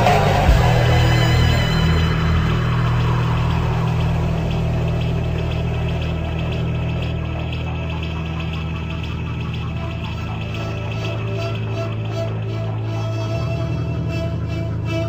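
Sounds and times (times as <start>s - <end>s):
faint fast ticking: 0.0s - 15.0s
low droning hum: 0.0s - 15.0s.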